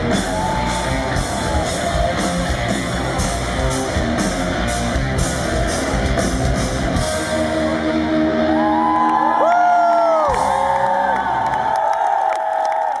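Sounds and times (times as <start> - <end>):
crowd cheering and whooping: 0.0 - 4.3, 6.8 - 13.0.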